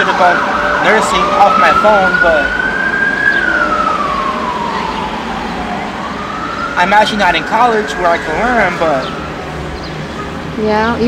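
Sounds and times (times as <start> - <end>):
emergency vehicle siren wailing: 0.0 - 11.0.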